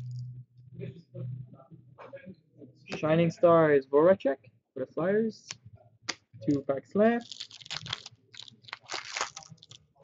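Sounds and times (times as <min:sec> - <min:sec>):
wrapper tearing and crinkling: 0:07.2 - 0:09.9.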